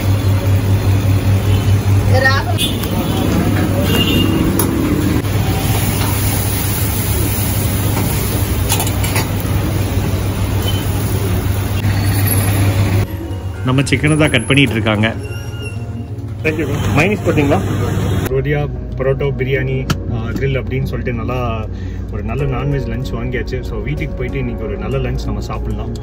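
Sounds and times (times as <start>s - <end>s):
road traffic noise: 0.0s - 18.4s.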